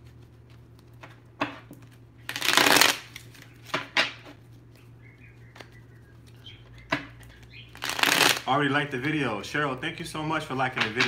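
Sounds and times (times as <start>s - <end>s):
cards shuffling: 0.0s - 9.2s.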